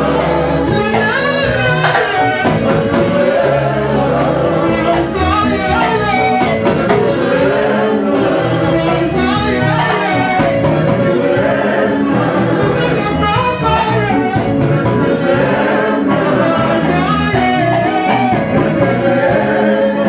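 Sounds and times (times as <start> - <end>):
drum beat with cymbals: 0.0 - 20.0
electric guitar: 0.0 - 20.0
voices singing: 0.0 - 20.0.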